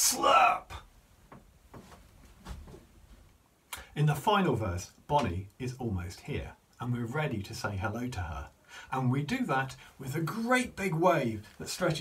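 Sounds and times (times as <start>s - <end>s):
person speaking: 0.0s - 0.9s, 3.7s - 12.0s.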